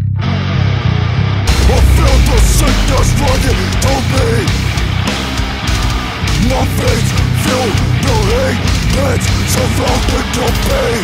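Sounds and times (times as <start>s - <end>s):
heavy metal band playing: 1.4s - 11.0s.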